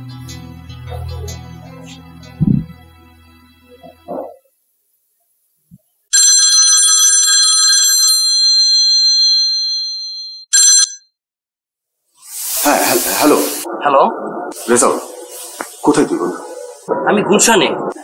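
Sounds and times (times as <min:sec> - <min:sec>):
electronic telephone ringing: 0:06.1 - 0:11.0.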